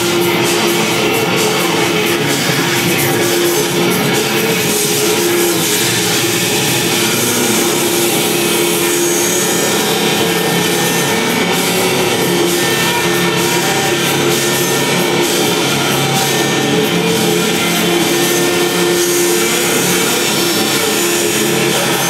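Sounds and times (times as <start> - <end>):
harsh hissing noise music: 0.0 - 22.0
low drone tones: 0.0 - 22.0.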